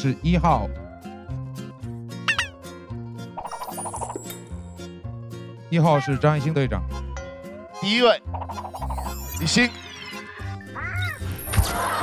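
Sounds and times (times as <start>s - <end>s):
background music: 0.0s - 12.0s
cat meow sound effect: 10.6s - 11.3s.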